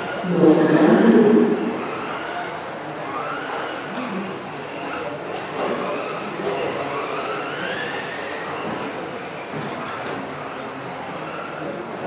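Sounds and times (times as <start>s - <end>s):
rc car motors whining: 1.0s - 12.0s.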